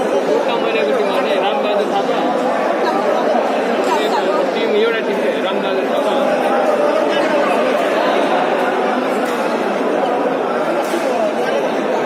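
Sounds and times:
overlapping chatter in hall: 0:00.0 - 0:12.0.

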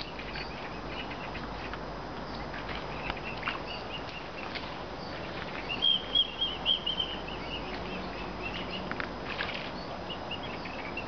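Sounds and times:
cygnets peeping: 0:00.0 - 0:11.0.

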